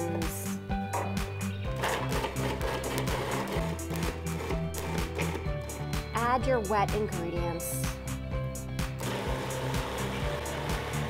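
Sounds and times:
background music with steady beat: 0.0s - 11.0s
food processor motor chopping: 1.7s - 5.8s, 9.0s - 11.0s.

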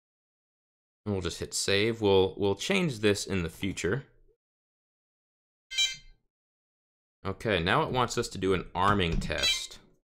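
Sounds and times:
short high-pitched tone: 5.7s - 6.2s.

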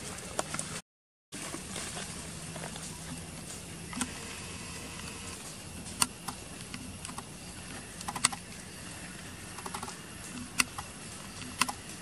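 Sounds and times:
baby monkey suckling clicks: 8.0s - 8.4s, 9.6s - 11.9s.

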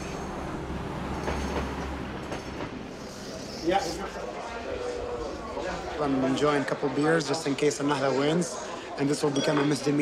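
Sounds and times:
tram rumbling on rails: 0.0s - 3.2s.

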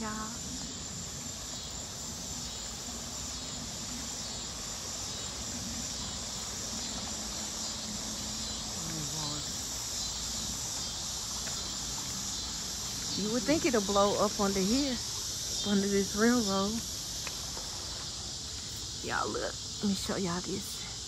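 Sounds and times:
insects chirring: 0.0s - 21.0s.

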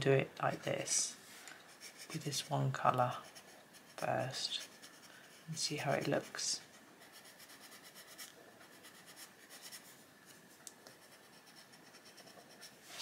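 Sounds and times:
pencil scratching on paper: 1.7s - 9.9s, 10.9s - 13.0s.

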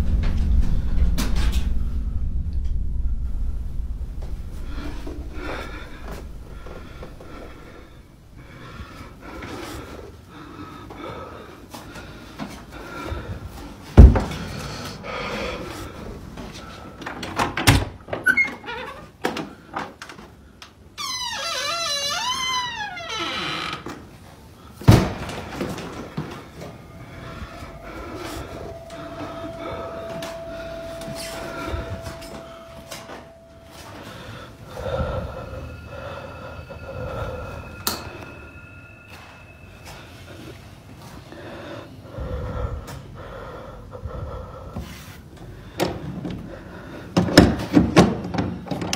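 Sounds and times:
faint steady humming tones: 0.0s - 18.6s, 23.8s - 48.9s
knocks and thuds: 14.0s - 14.6s
door hinge squealing: 18.2s - 19.1s.

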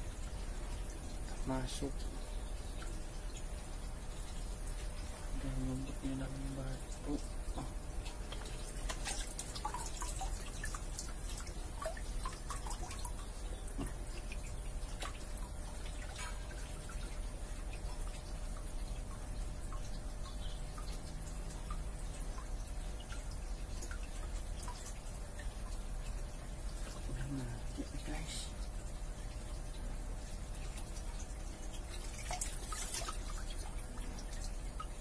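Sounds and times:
steady low hum: 0.0s - 35.0s
water drips and splashes: 0.0s - 35.0s.

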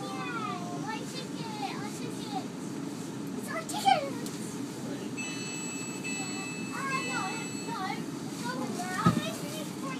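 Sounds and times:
children's voices: 0.0s - 2.6s, 3.4s - 4.4s, 6.7s - 9.9s
high-pitched ringing tone: 5.2s - 8.0s.

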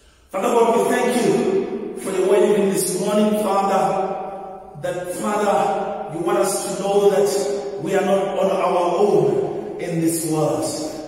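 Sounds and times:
man praying into a microphone: 0.3s - 11.0s.

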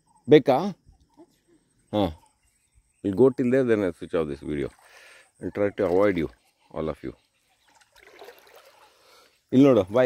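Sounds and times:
water trickling in stream: 4.1s - 10.0s.

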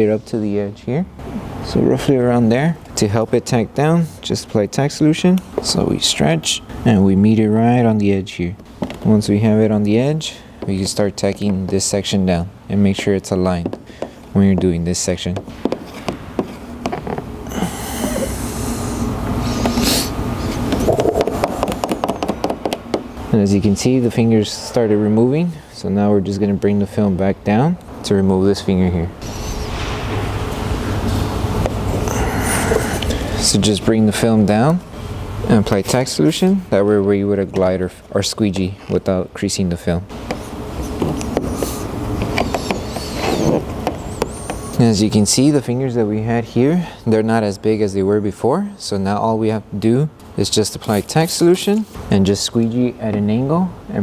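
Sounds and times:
squeegee squeaking on wet film: 42.2s - 44.8s.

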